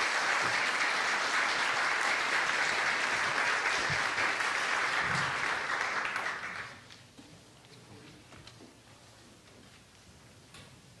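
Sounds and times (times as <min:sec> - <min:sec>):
scattered hand claps: 0:00.0 - 0:07.0.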